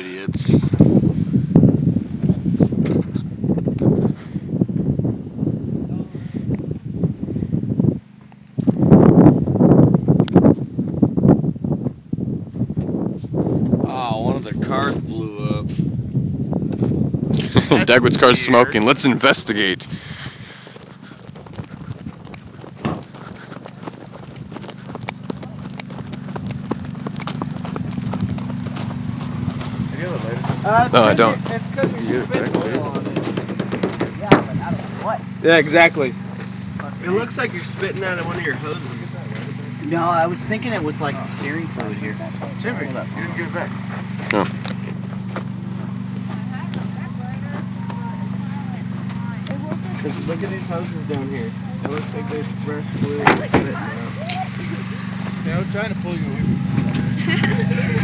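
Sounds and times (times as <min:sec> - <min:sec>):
car engine humming: 0:00.0 - 0:58.0
footsteps crunching on dry ground: 0:19.9 - 0:32.4, 0:41.3 - 0:55.5.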